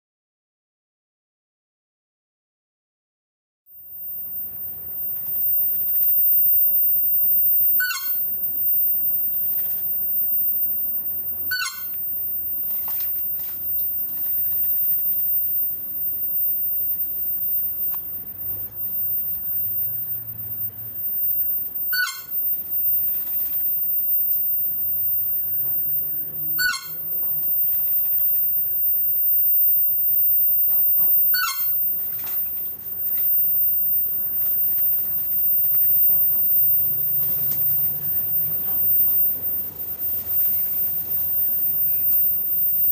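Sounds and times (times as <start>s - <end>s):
bird call sliding downward: 7.5s - 15.7s, 17.1s - 28.8s, 31.0s - 42.9s
bird calls with falling notes: 11.5s - 12.0s, 26.5s - 27.0s.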